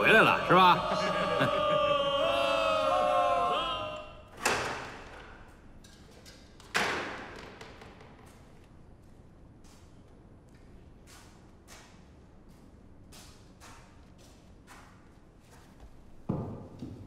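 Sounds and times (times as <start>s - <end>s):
men cheering: 0.0s - 4.3s.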